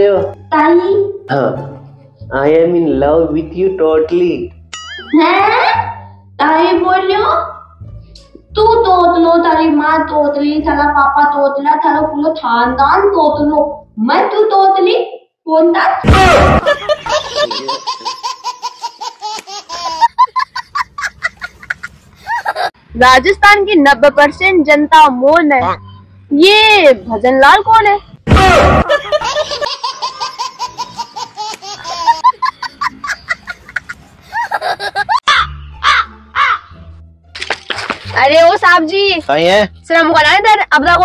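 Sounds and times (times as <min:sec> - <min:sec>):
background music with low bass: 0:00.0 - 0:14.3, 0:22.8 - 0:29.8, 0:35.3 - 0:41.0
person laughing hard: 0:19.8 - 0:22.7, 0:30.6 - 0:35.5
crow cawing: 0:35.3 - 0:36.8.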